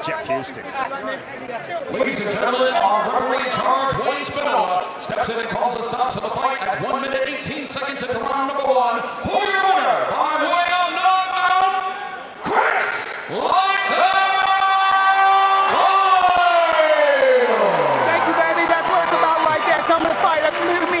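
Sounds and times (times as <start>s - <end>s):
crowd cheering: 9.3s - 21.0s.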